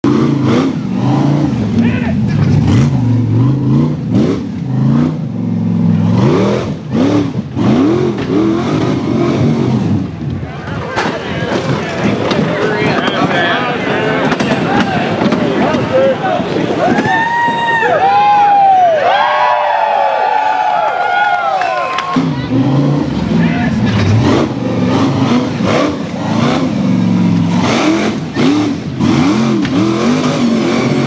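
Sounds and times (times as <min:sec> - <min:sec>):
engine revving hard: 0:00.0 - 0:10.2, 0:22.0 - 0:31.0
spectators shouting: 0:01.7 - 0:02.4, 0:10.4 - 0:31.0
engine knocks: 0:10.0 - 0:17.6.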